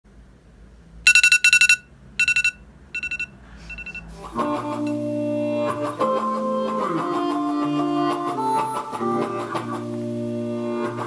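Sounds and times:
smartphone alarm beeping: 0:01.1 - 0:04.1.

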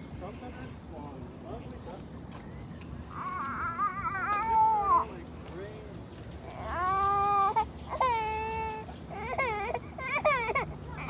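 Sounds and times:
young child crying: 0:03.1 - 0:05.1.

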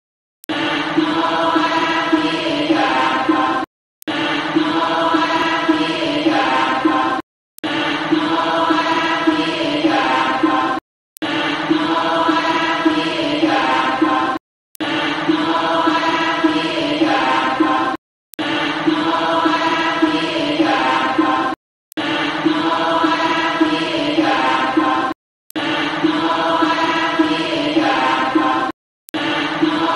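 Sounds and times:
voices chanting: 0:00.5 - 0:29.9.

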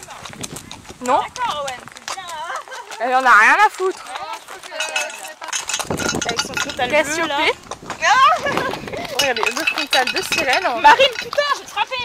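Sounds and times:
horse tack clinking: 0:00.0 - 0:12.0.

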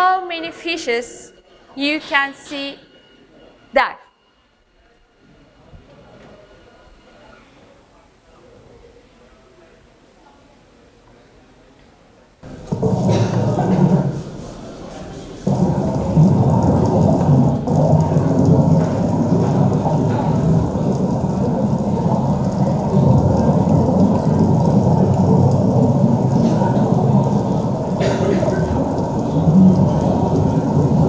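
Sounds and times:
muffled underwater rush: 0:12.4 - 0:31.0.

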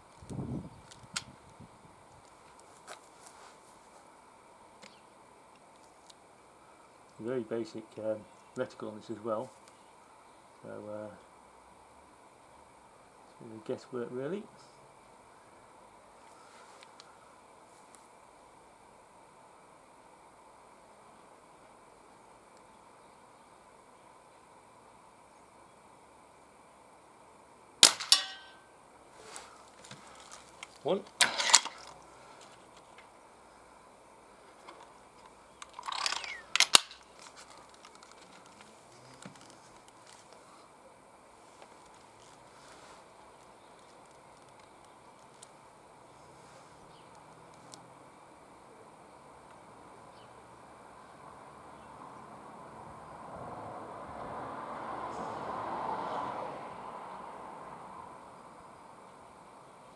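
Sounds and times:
air rifle shot: 0:27.8 - 0:28.6
sharp clicks and rattle: 0:30.6 - 0:32.0, 0:34.7 - 0:39.5.

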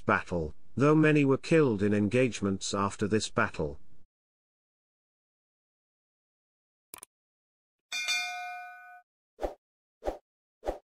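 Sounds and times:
bell-like chime: 0:07.9 - 0:09.0.

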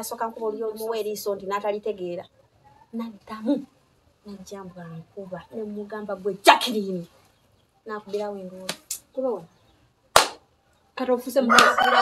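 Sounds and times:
loud sharp smack: 0:10.2 - 0:10.4.

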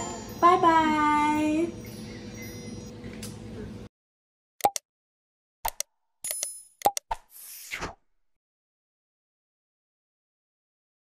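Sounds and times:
sharp click: 0:04.6 - 0:04.8, 0:05.6 - 0:07.2.

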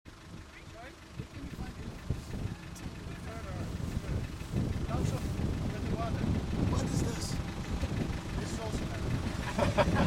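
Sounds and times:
vehicle engine idling: 0:00.1 - 0:10.0
quiet indistinct voices: 0:00.5 - 0:09.3.

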